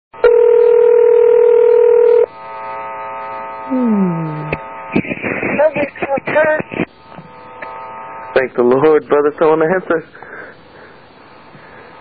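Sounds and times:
telephone ringing tone: 0.2s - 2.3s.

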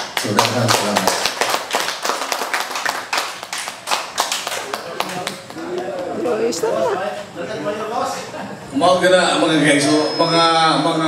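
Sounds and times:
group clapping: 0.0s - 6.7s
mixed voices: 4.6s - 9.8s.

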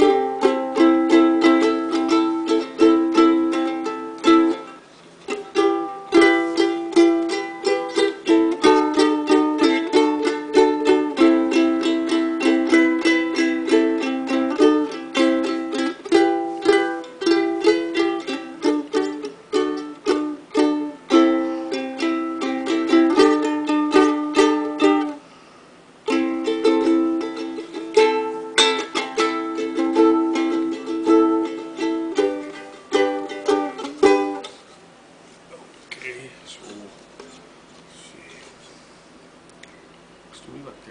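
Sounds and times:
ukulele strumming chords: 0.0s - 25.3s, 26.0s - 34.7s.

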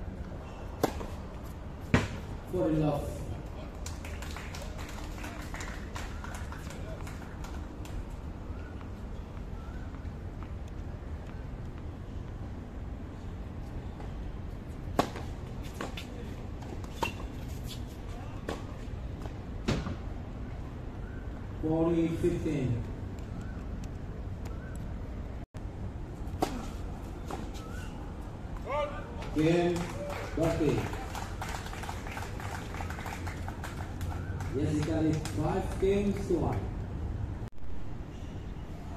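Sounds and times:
outdoor background hum: 0.0s - 38.9s
racket hitting tennis ball: 0.8s - 1.2s.

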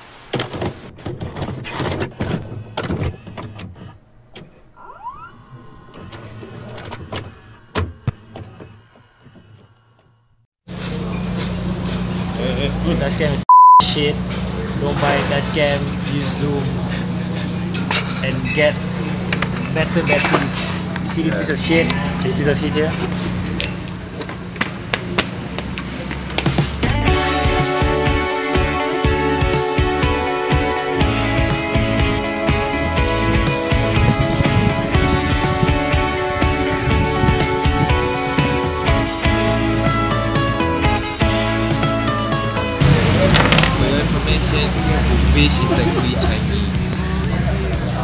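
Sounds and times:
music: 26.4s - 48.0s.

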